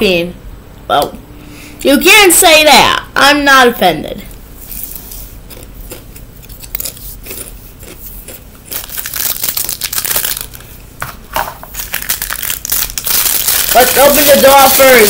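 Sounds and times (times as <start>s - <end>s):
plastic wrapper crinkling: 8.6s - 10.8s, 11.6s - 15.0s.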